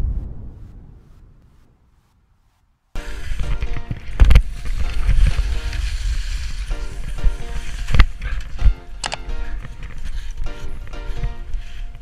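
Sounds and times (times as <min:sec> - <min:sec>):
wind on microphone: 0:00.0 - 0:02.3, 0:03.0 - 0:09.0
skis scraping over snow: 0:01.1 - 0:12.0
background music: 0:03.0 - 0:12.0.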